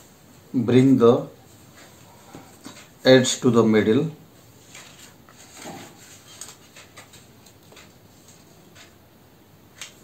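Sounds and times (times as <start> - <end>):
paper rustling and crinkling: 4.6 - 9.0.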